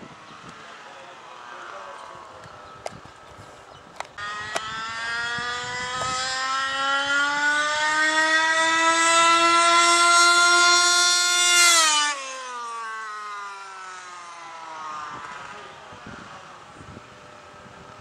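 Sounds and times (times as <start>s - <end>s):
model car engine running: 4.0s - 18.0s.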